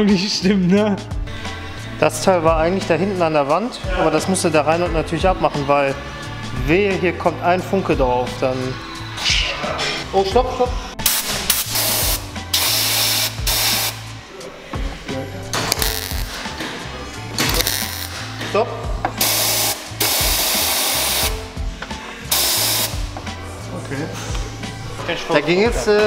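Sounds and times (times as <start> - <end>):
background music with bass: 0.0 - 26.0
welder crackling: 15.6 - 16.4.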